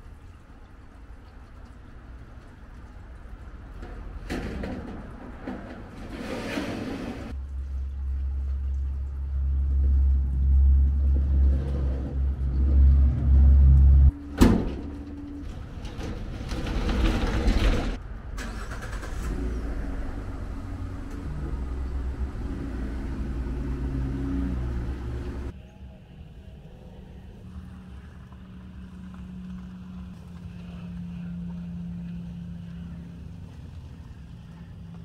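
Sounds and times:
pickup truck engine: 0:09.5 - 0:25.5.

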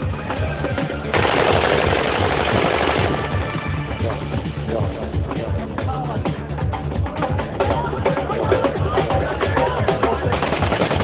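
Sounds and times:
automatic gunfire burst: 0:01.1 - 0:03.6, 0:10.4 - 0:11.0.

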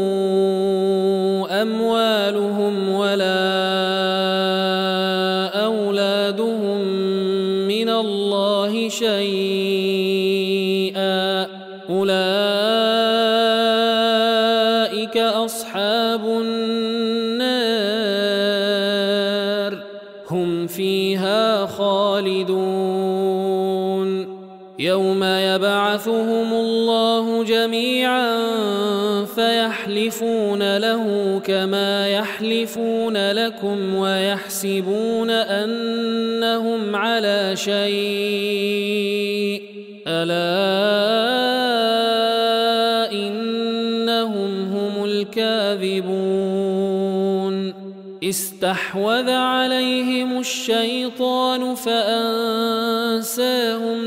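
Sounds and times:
man chanting melodically: 0:00.0 - 0:54.0.

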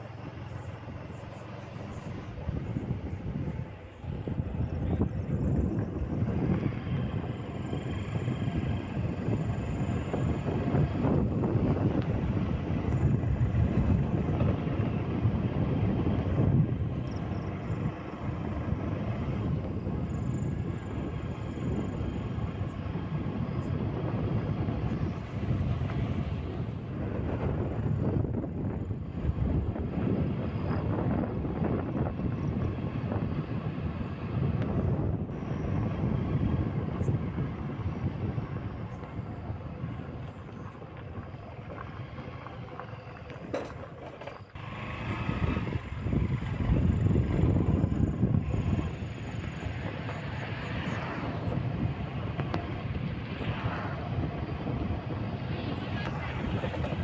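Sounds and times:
vehicle rumbling along road: 0:00.0 - 0:57.0.

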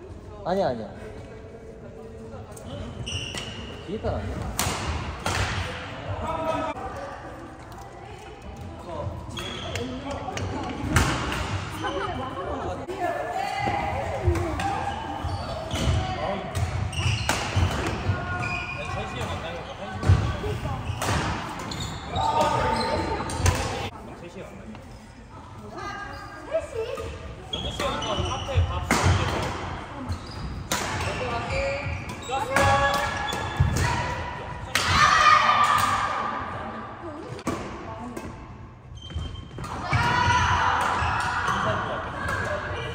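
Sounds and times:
shoes squeaking on court floor: 0:02.5 - 0:04.4, 0:09.0 - 0:10.8, 0:14.8 - 0:23.9, 0:26.0 - 0:28.9, 0:29.9 - 0:33.8, 0:38.8 - 0:39.7
rackets hitting shuttlecock: 0:04.4 - 0:05.8, 0:09.4 - 0:11.8, 0:15.7 - 0:18.5, 0:23.2 - 0:23.9, 0:28.8 - 0:29.8.

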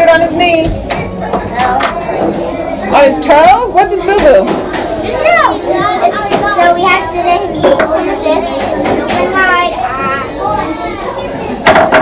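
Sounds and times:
young children chattering: 0:00.3 - 0:12.0.

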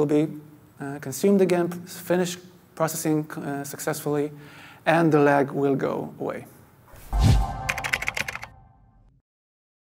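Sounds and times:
low swell: 0:07.0 - 0:09.0
held tone: 0:07.0 - 0:09.1
keyboard typing clicks: 0:07.5 - 0:08.6.

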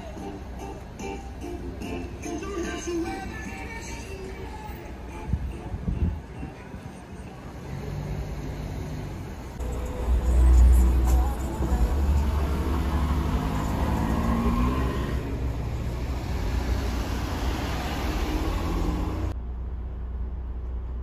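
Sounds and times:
motor vehicle rumbling: 0:00.0 - 0:21.0.

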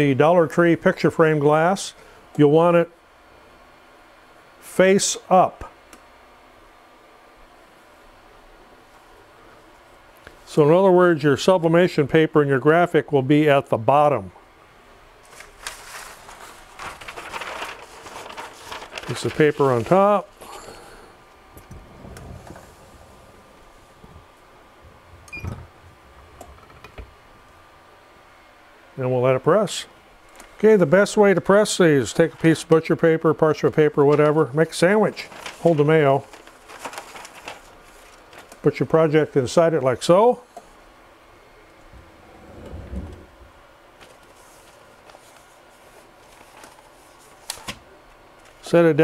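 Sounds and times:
paper rustling: 0:15.2 - 0:20.3, 0:34.1 - 0:38.7, 0:44.0 - 0:47.8
soft low rumble: 0:21.5 - 0:26.7, 0:41.8 - 0:43.7
heat press platen thump: 0:41.9 - 0:43.6.

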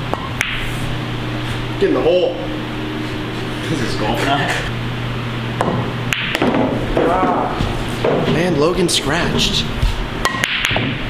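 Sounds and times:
pool balls clacking: 0:05.6 - 0:08.6, 0:10.2 - 0:11.0.

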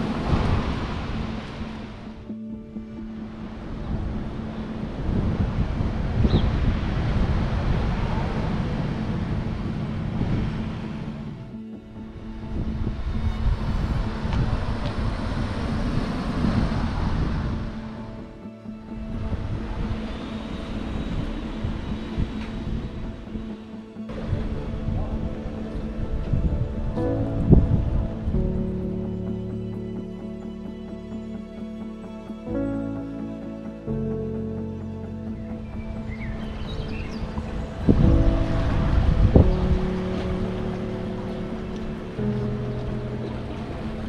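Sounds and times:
car passing: 0:00.0 - 0:26.8
soft background music: 0:00.0 - 0:44.0
wind rumbling on microphone: 0:00.0 - 0:44.0.

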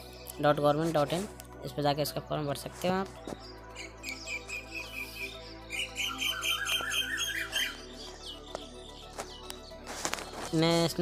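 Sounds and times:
bird chirping: 0:03.2 - 0:11.0.

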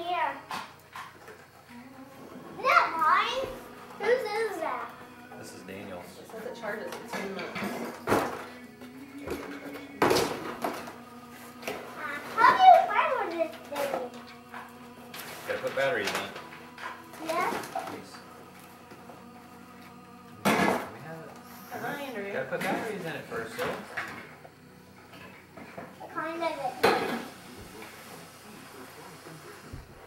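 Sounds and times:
adult and child voices: 0:00.0 - 0:00.7, 0:01.7 - 0:09.6, 0:11.6 - 0:14.4, 0:17.1 - 0:18.3, 0:20.7 - 0:24.3, 0:26.0 - 0:27.7
background music: 0:01.6 - 0:28.4.

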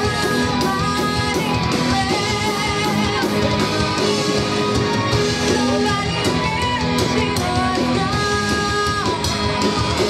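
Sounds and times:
distorted electric guitars: 0:00.0 - 0:10.0.

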